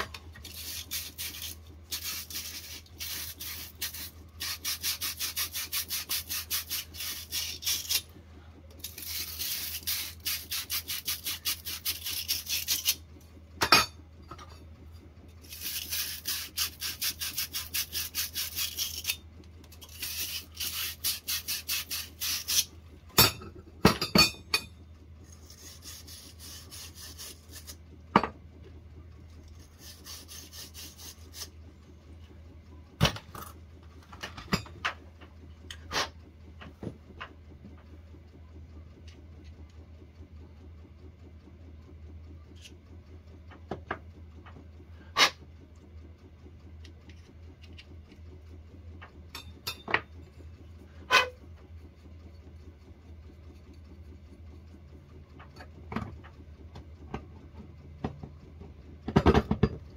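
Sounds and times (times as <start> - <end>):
brush scrubbing copper pipe: 0.4 - 8.0, 8.8 - 13.0, 15.5 - 19.2, 19.8 - 22.7, 25.3 - 27.8, 29.6 - 31.5.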